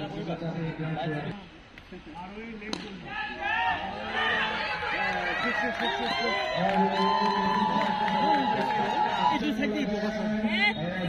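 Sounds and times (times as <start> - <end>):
cricket bat striking ball: 2.7 - 3.0
players shouting: 2.7 - 11.0.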